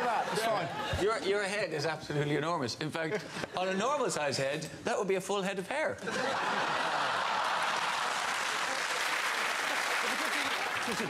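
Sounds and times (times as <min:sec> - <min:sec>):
audience laughing: 0:00.0 - 0:01.2, 0:06.0 - 0:11.0
audience applauding: 0:06.4 - 0:11.0.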